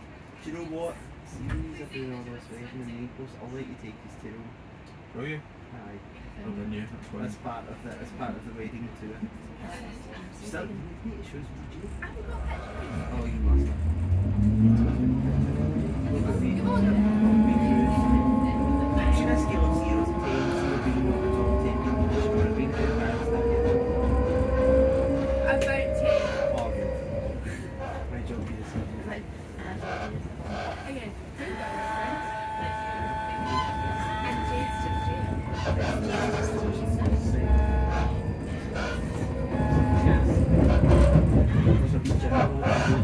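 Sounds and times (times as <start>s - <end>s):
train motors humming: 11.5s - 43.0s.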